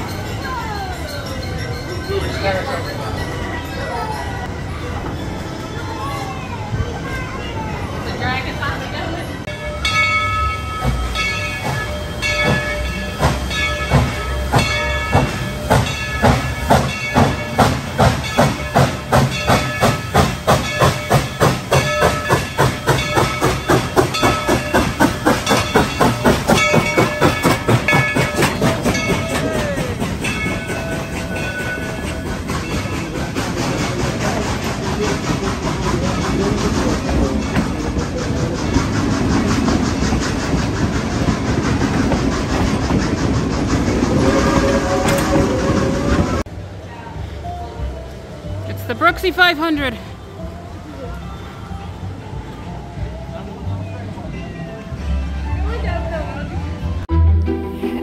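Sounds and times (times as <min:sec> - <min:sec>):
steady ringing tones: 0:00.0 - 0:06.0
train coaches rumbling and clacking: 0:00.0 - 0:58.0
steam locomotive chuffing: 0:07.8 - 0:46.8.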